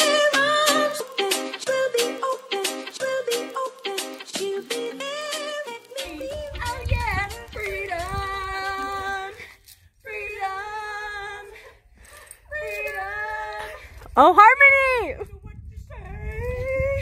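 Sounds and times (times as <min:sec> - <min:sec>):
music: 0:00.0 - 0:09.3
women singing long held notes: 0:00.0 - 0:14.1
wind rumble on microphone: 0:06.2 - 0:09.4, 0:10.0 - 0:17.0.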